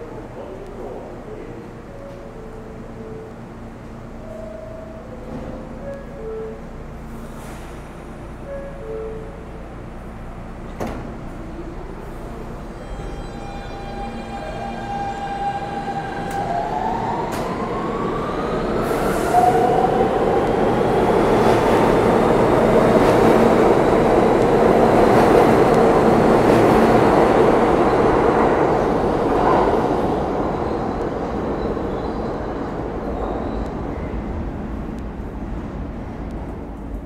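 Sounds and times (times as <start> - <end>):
subway train motors whining: 0.0 - 37.0.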